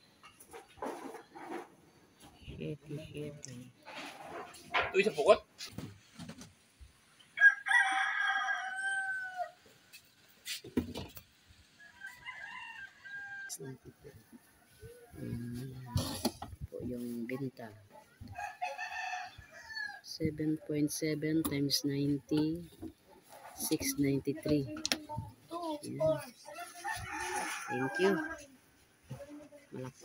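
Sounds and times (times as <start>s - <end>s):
rooster crowing: 7.4s - 9.6s, 11.8s - 13.6s, 18.3s - 20.0s, 26.5s - 28.5s.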